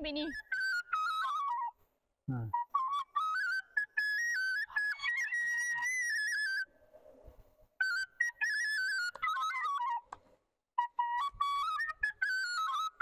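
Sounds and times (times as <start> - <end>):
flute melody: 0.0 - 6.8, 7.8 - 10.2, 10.8 - 13.0.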